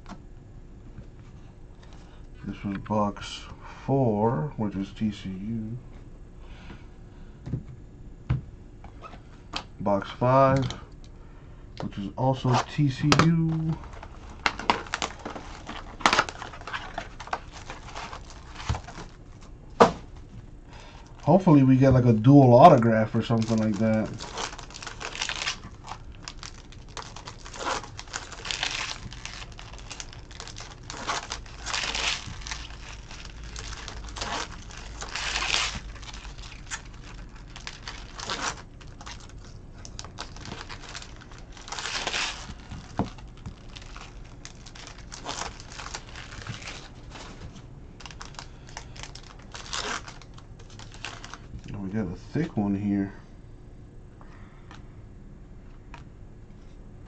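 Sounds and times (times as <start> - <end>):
wrapper crinkling and tearing: 12.0 - 51.8.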